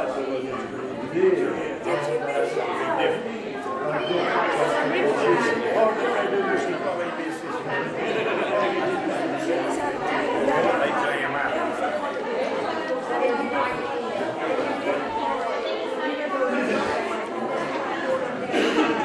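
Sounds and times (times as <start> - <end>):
many people chatting: 0.0 - 19.0.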